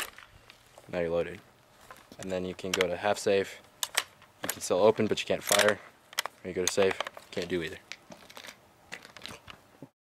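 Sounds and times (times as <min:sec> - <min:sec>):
rifle handling clicks and knocks: 0:00.0 - 0:00.9, 0:01.8 - 0:09.6.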